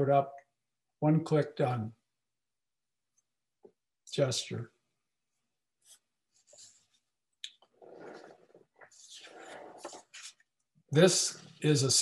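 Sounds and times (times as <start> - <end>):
scratchy rubbing on microphone: 7.7 - 10.4.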